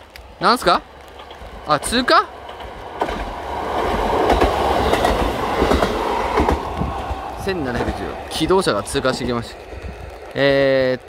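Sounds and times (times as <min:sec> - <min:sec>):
diesel railcar rumbling past: 0:00.0 - 0:11.0
wheels clattering over rail joints: 0:00.0 - 0:11.0.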